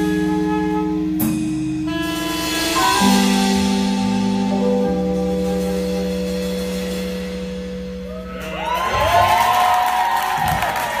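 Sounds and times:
live band playing: 0:00.0 - 0:11.0
audience cheering and applauding: 0:08.0 - 0:11.0
high whoops: 0:08.0 - 0:11.0.

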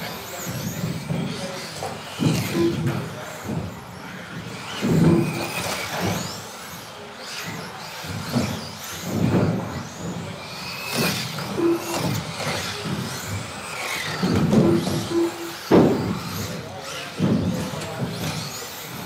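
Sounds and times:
rc car motors whining: 0:00.0 - 0:19.0
short beeps: 0:14.6 - 0:15.5.

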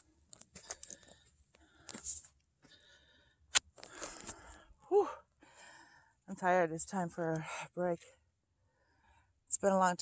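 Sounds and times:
footsteps crunching on rocky trail: 0:00.3 - 0:02.8.

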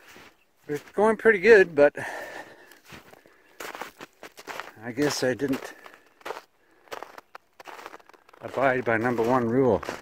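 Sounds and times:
footsteps crunching through snow: 0:00.0 - 0:10.0.

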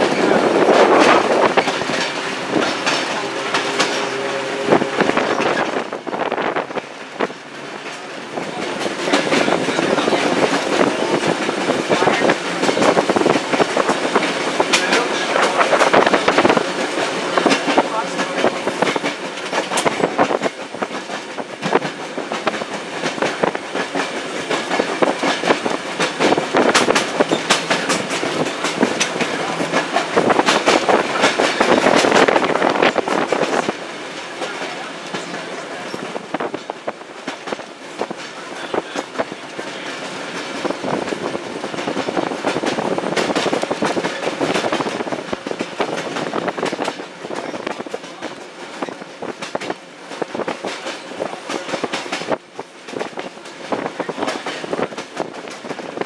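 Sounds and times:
trolley car running noise: 0:00.0 - 0:56.0
wheels clacking over rail joints: 0:00.0 - 0:56.0.

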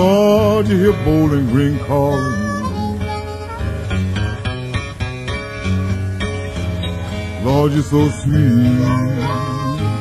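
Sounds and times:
acoustic guitar: 0:00.0 - 0:10.0
harmonica bending notes: 0:00.2 - 0:10.0.

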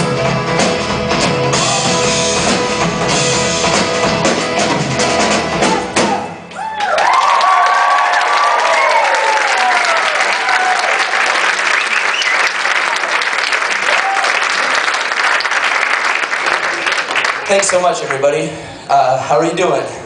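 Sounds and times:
cheers and whistles: 0:06.0 - 0:12.6, 0:13.9 - 0:14.5
audience clapping: 0:06.6 - 0:18.5.

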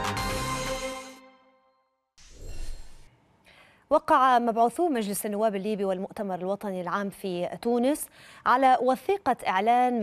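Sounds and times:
soft breathy whoosh: 0:02.2 - 0:03.2
woman speaking: 0:03.9 - 0:10.0.

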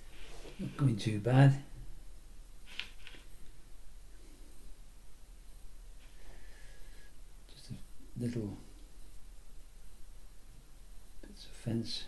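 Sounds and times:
brush rubbing on wood: 0:00.0 - 0:01.0.

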